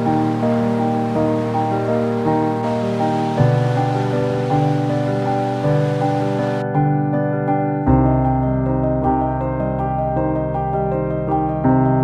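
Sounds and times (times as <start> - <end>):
faint hiss of waves: 0.0 - 6.6
slow gentle instrumental music: 0.0 - 12.0.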